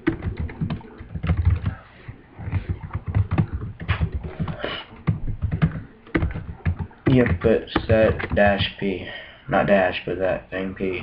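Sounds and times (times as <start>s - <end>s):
computer keyboard typing: 0.0s - 1.8s, 2.4s - 8.7s.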